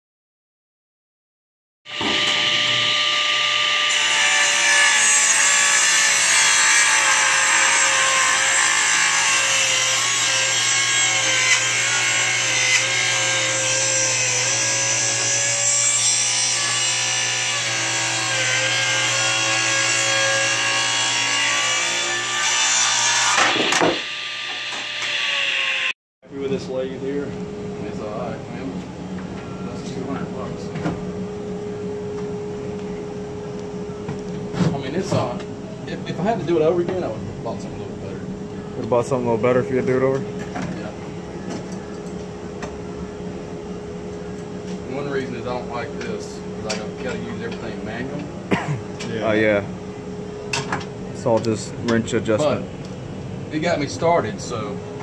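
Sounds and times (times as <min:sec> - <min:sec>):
table saw cutting wood: 0:01.9 - 0:26.0.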